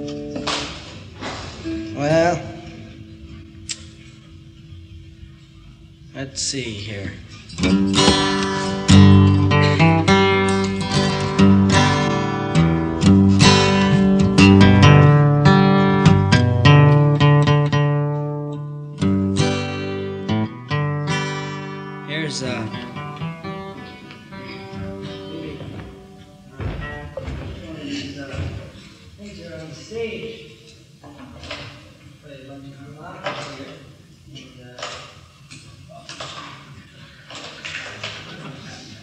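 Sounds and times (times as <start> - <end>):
acoustic guitar playing: 0.0 - 29.1.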